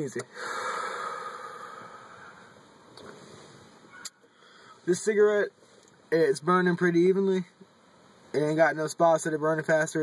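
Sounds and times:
breathy exhale of smoke: 0:00.3 - 0:04.8.

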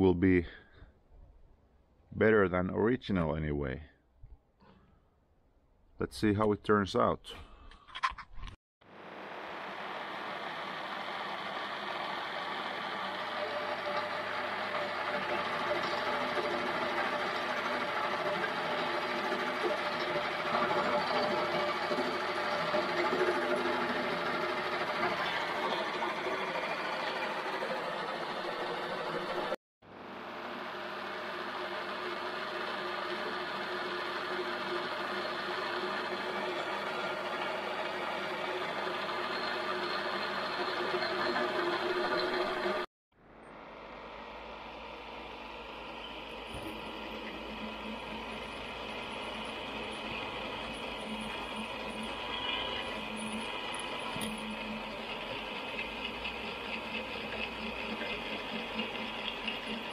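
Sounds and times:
metal lathe motor whine: 0:08.9 - 0:59.9.

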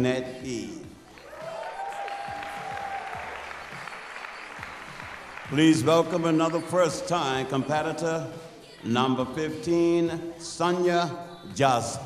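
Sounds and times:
audience applauding: 0:01.1 - 0:07.2.

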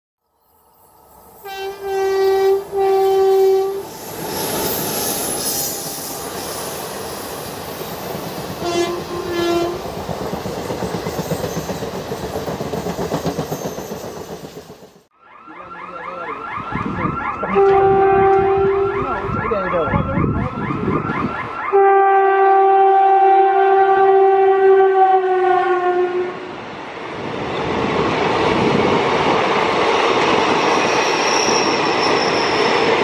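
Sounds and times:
train horn blasts: 0:01.4 - 0:03.9, 0:08.6 - 0:09.8, 0:17.5 - 0:19.3, 0:21.7 - 0:26.5
train wheels clattering on rails: 0:04.0 - 0:15.0.

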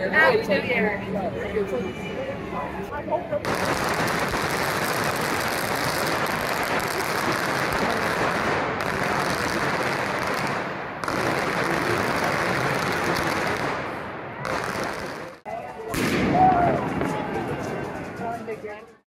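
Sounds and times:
firecrackers crackling: 0:03.4 - 0:18.6.

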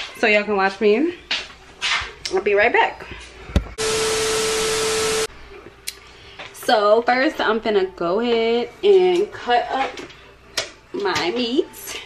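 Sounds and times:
steady beep tone: 0:03.8 - 0:05.3
white-noise static burst: 0:03.8 - 0:05.3.

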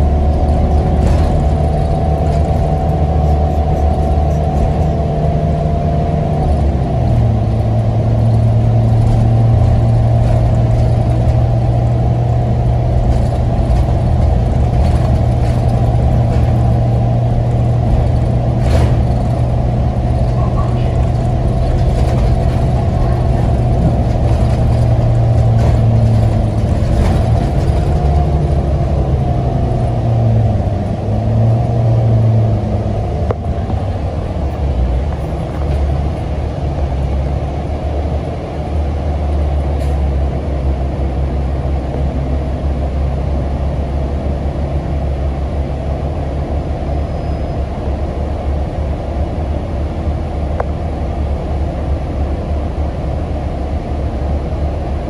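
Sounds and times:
bus engine droning: 0:00.0 - 0:55.0
road rumble: 0:00.0 - 0:55.0.

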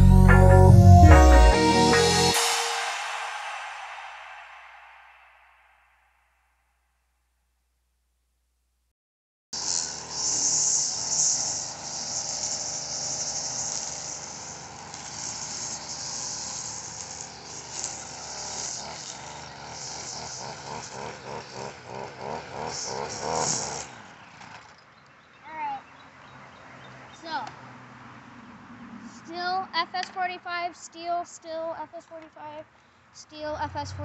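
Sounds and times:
string trimmer engine cutting grass: 0:09.6 - 0:25.0.

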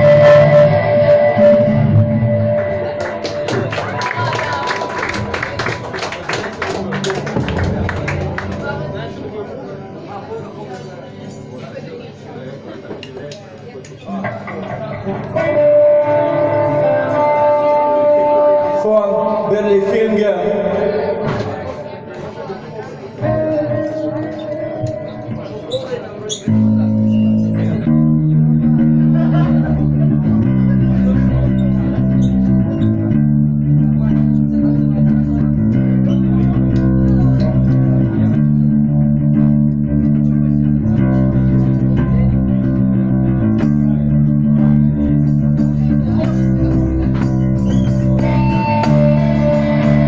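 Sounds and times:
bass guitar held notes: 0:00.0 - 0:03.9, 0:06.8 - 0:10.5, 0:26.4 - 0:50.0
electric guitar: 0:00.0 - 0:12.0, 0:12.6 - 0:50.0
higher guitar line: 0:00.0 - 0:13.2, 0:13.9 - 0:50.0.

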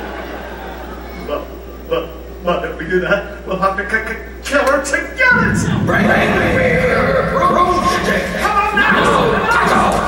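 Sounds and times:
actors exclaiming: 0:05.2 - 0:10.0
steady low rumble: 0:05.2 - 0:10.0.

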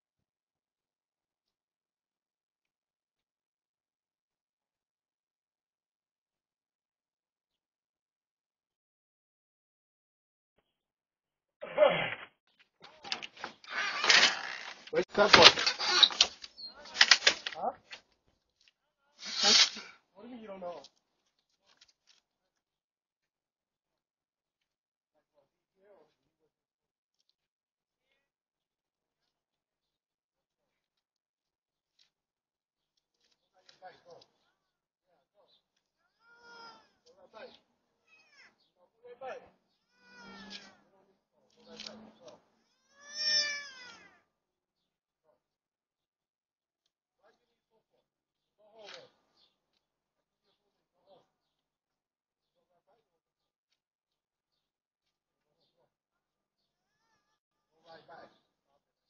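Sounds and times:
child crying out: 0:36.2 - 0:36.9, 0:39.9 - 0:40.6, 0:42.8 - 0:44.2.

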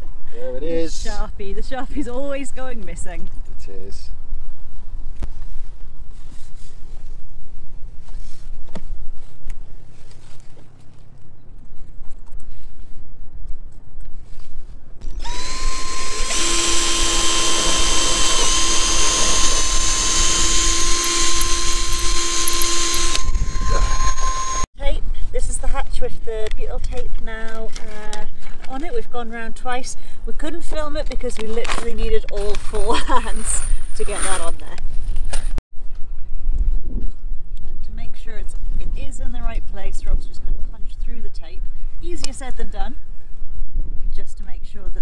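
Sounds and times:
wind rumble on microphone: 0:01.3 - 0:15.5, 0:23.0 - 0:29.5, 0:30.4 - 0:45.0
cordless drill boring: 0:15.0 - 0:24.7.

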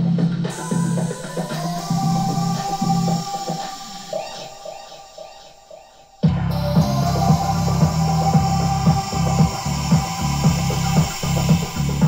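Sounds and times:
electronic house music: 0:00.0 - 0:12.0.

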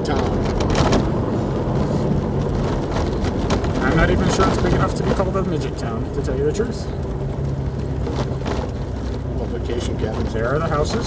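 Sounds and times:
engine drone: 0:00.0 - 0:11.0
tyre and road noise: 0:00.0 - 0:11.0.

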